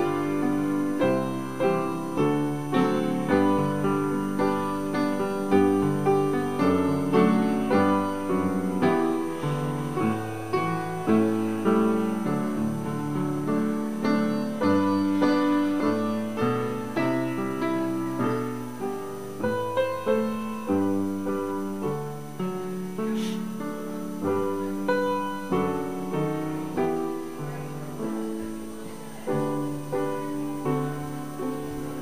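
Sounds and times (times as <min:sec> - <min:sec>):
piano music: 0:00.0 - 0:32.0.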